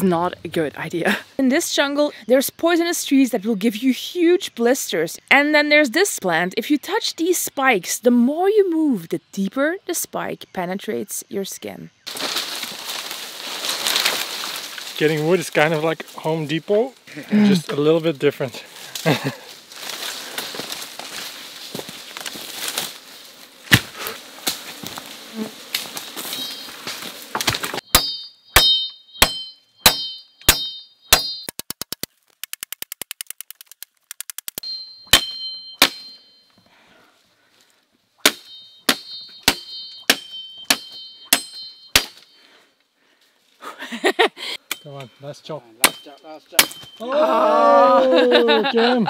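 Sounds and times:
machete chopping wood: 0:23.7 - 0:24.6, 0:27.3 - 0:32.1, 0:35.1 - 0:36.1, 0:38.2 - 0:42.3, 0:45.8 - 0:47.0.

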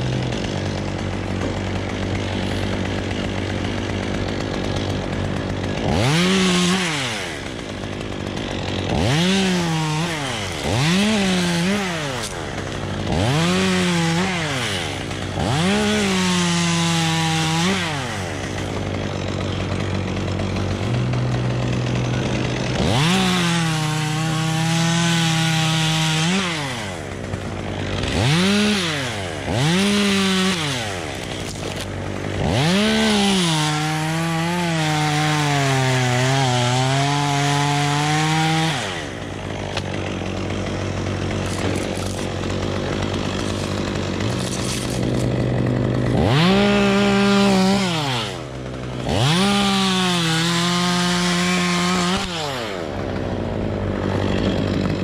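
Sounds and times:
chainsaw revving and cutting: 0:00.0 - 0:55.0.

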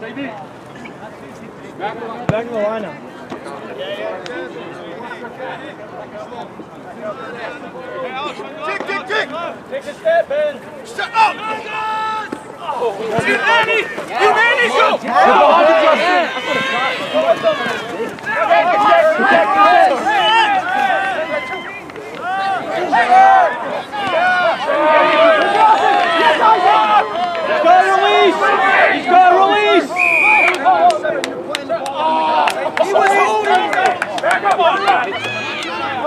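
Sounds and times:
crowd shouting: 0:07.0 - 0:36.0
referee whistle blast: 0:29.9 - 0:30.7.

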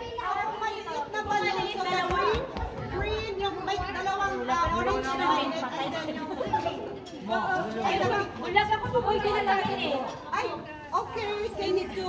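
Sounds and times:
party chatter: 0:00.0 - 0:12.0.

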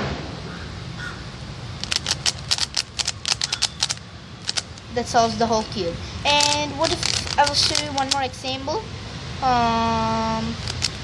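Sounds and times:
puzzle cube layers clicking: 0:01.8 - 0:04.8, 0:06.3 - 0:08.3, 0:10.6 - 0:11.0.

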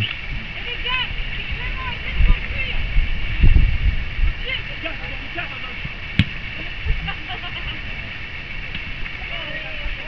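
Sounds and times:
steady low rumble: 0:00.0 - 0:10.0
dull thump: 0:06.2 - 0:06.4.

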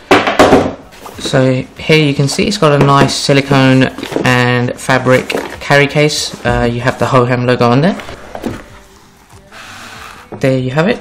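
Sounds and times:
zipper being pulled open: 0:09.3 - 0:10.3.

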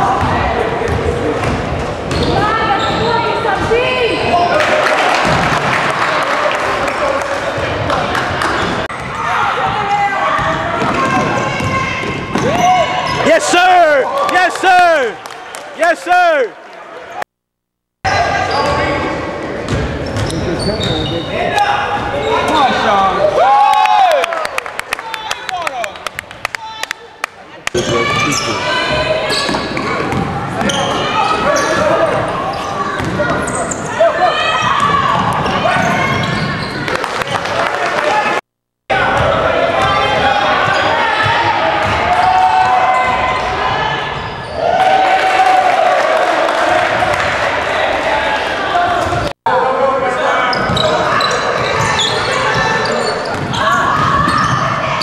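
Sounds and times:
sneaker squeaks: 0:02.1 - 0:03.4, 0:19.7 - 0:23.0, 0:27.8 - 0:37.3, 0:44.1 - 0:44.6, 0:50.4 - 0:55.0
players shouting: 0:02.4 - 0:17.2, 0:21.5 - 0:55.0.

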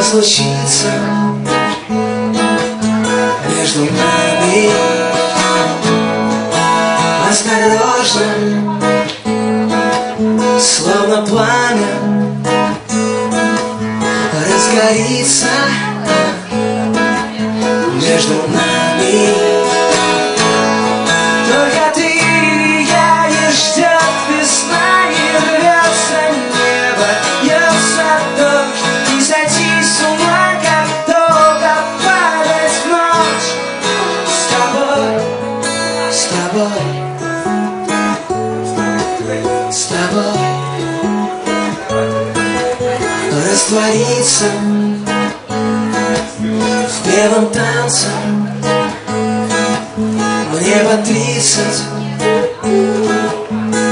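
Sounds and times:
strummed acoustic guitar: 0:00.0 - 0:53.9.

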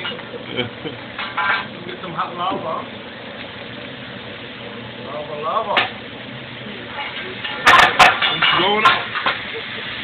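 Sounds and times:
metal spatulas clacking on griddle: 0:07.0 - 0:09.4.

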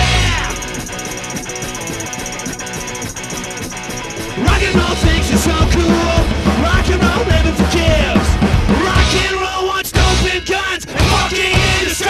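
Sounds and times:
electric guitar: 0:00.0 - 0:09.4
fast high ticking: 0:00.0 - 0:12.0
punk band playing live: 0:00.0 - 0:12.0.

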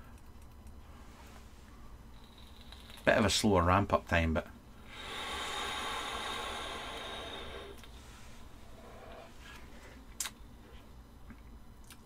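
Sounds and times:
vape airflow hiss with coil sizzle: 0:04.9 - 0:08.0
soft exhale: 0:04.9 - 0:10.0.

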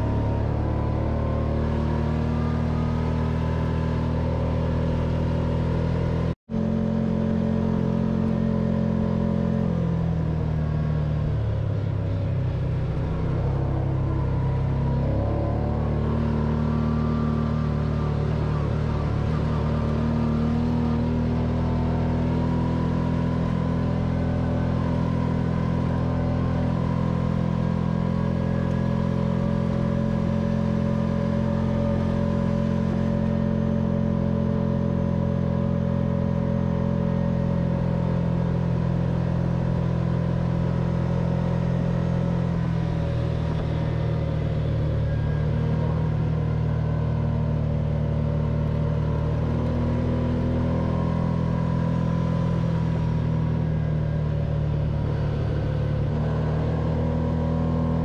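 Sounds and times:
v-twin engine running under load: 0:00.0 - 0:58.0.

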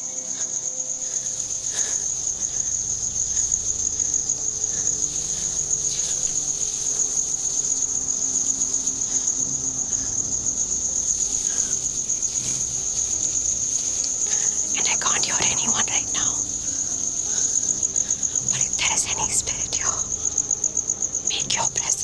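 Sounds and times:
crickets chirping: 0:00.0 - 0:22.0.

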